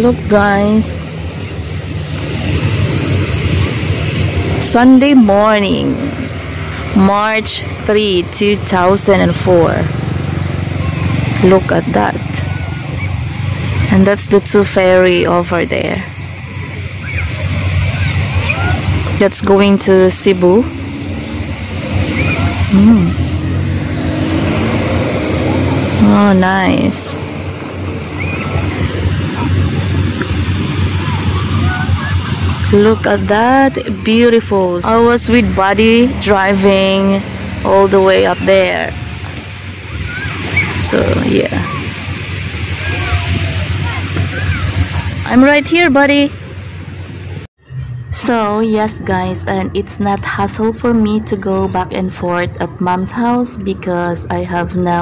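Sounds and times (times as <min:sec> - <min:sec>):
distant voices: 0:00.0 - 0:55.0
faint distant sounds: 0:00.0 - 0:55.0
wind buffeting microphone: 0:00.0 - 0:55.0.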